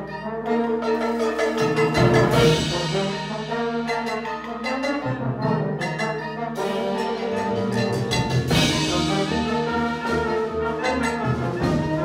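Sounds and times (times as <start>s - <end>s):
brass held chords: 0.0s - 12.0s
wind band playing: 0.0s - 12.0s.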